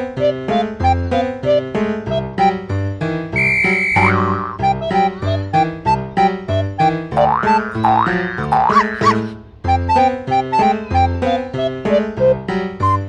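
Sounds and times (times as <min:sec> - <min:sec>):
bouncy piano tune: 0:00.0 - 0:13.0
springy boing sound effects: 0:04.0 - 0:04.7, 0:07.2 - 0:09.3.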